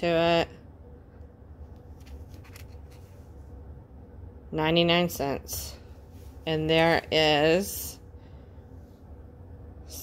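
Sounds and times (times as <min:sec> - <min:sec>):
low steady hum: 0:00.0 - 0:10.0
yarn and paper label rustling: 0:01.8 - 0:03.4.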